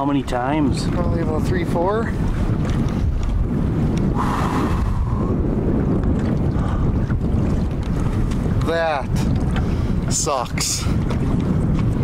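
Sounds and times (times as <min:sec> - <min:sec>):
choppy water: 0:00.0 - 0:12.0
wind buffeting microphone: 0:00.0 - 0:12.0.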